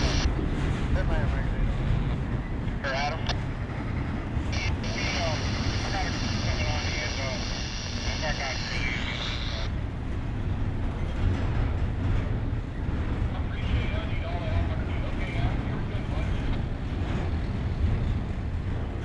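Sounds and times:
train wheels rumbling over rails: 9.8 - 19.0.

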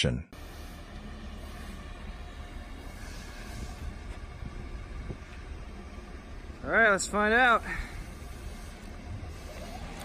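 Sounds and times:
car rolling low rumble and hiss: 0.4 - 10.0.

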